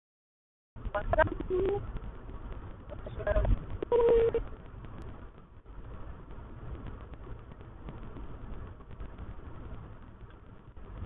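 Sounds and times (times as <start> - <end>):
car cabin rumble: 0.8 - 11.0.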